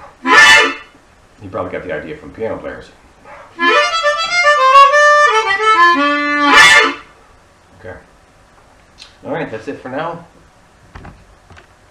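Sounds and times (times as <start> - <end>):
harmonica playing blues lick: 0.2 - 1.0, 3.6 - 7.1.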